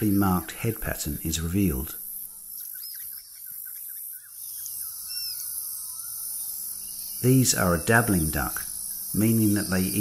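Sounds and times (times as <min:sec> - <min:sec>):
bird chirps: 0:01.8 - 0:10.0
high-pitched insect drone: 0:02.0 - 0:10.0.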